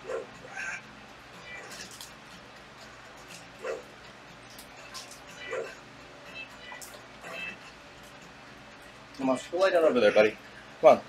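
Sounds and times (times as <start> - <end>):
dog barking: 0.0 - 0.8, 3.6 - 3.9, 5.4 - 5.8.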